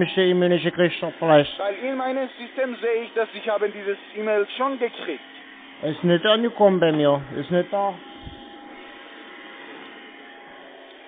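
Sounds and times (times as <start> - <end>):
thin steady tone: 0.0 - 11.0.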